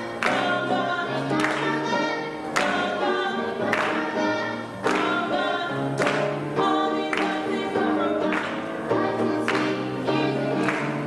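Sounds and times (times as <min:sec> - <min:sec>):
choir singing gospel song: 0:00.0 - 0:11.0
hand claps: 0:01.4 - 0:01.9, 0:02.6 - 0:03.0, 0:03.7 - 0:04.2, 0:04.8 - 0:05.2, 0:06.0 - 0:06.4, 0:08.3 - 0:08.6, 0:09.5 - 0:09.8, 0:10.6 - 0:11.0.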